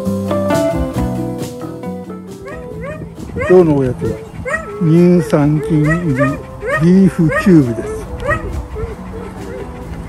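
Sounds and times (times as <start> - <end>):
dogs whining and barking: 2.2 - 10.0.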